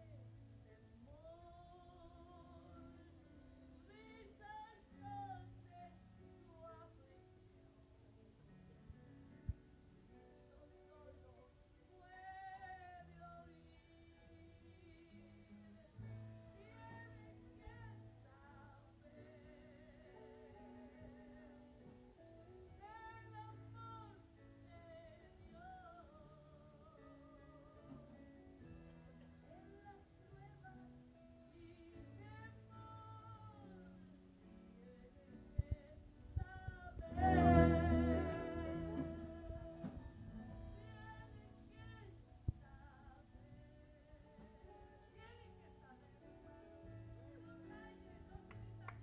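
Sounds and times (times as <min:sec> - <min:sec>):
woman singing: 0:00.0 - 0:07.7, 0:10.5 - 0:28.2, 0:29.4 - 0:49.0
sustained keyboard chords: 0:37.0 - 0:40.8
worship band music: 0:37.0 - 0:40.9
low bass note: 0:37.1 - 0:39.8.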